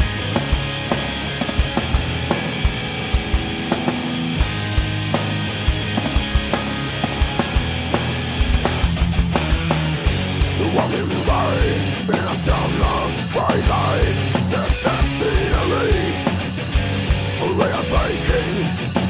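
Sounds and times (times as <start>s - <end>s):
low guitar and bass chords: 0.0s - 19.0s.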